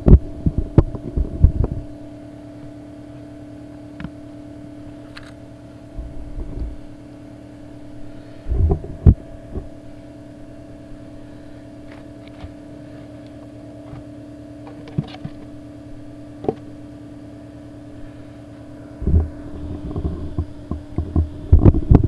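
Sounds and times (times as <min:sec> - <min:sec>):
steady low hum: 0:00.0 - 0:22.0
plastic box handling rumble: 0:06.0 - 0:07.0, 0:08.4 - 0:09.8, 0:11.8 - 0:15.5, 0:19.0 - 0:22.0.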